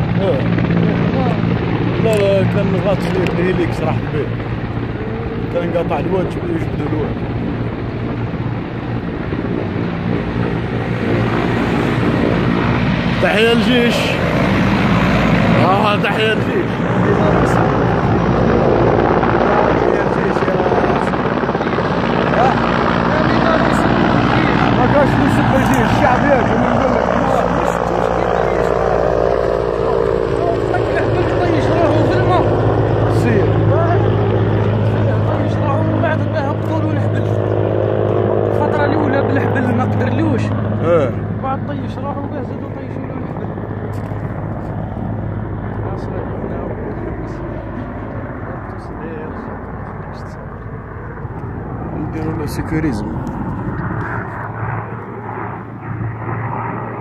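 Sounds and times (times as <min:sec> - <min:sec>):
people talking and calling: 0:00.0 - 0:56.6
helicopter engine and rotor: 0:00.0 - 0:57.0.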